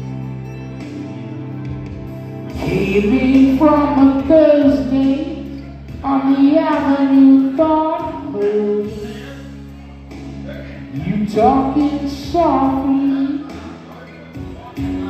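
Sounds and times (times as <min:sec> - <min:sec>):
backing track music: 0:00.0 - 0:15.0
person singing karaoke: 0:01.5 - 0:15.0.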